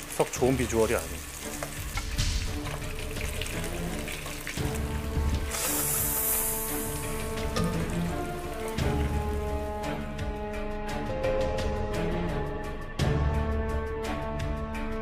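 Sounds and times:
chicken sizzling in a wok: 0.0 - 9.7.

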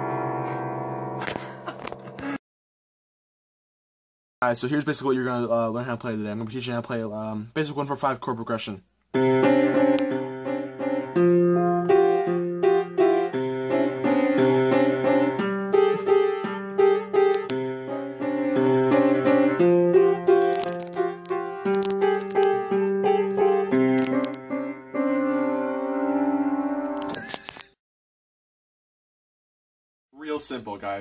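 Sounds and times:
piano chords: 0.0 - 2.3, 9.2 - 27.2.

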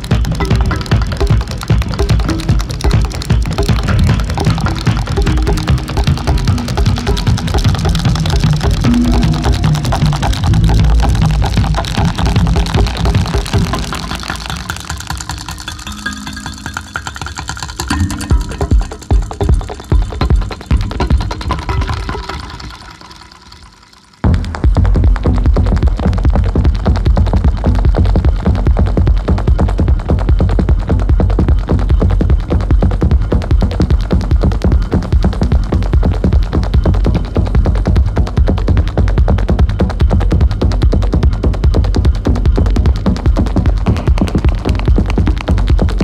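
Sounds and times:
heavy low beat: 0.0 - 14.8, 17.8 - 22.4, 24.2 - 46.0
techno music: 0.0 - 46.0
metal tines and springs plucked: 0.4 - 24.3.

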